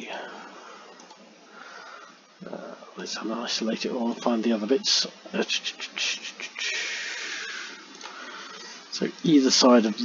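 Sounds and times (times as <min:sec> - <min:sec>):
breathy exhale: 0:01.5 - 0:02.2
mumbled voice: 0:05.4 - 0:07.7.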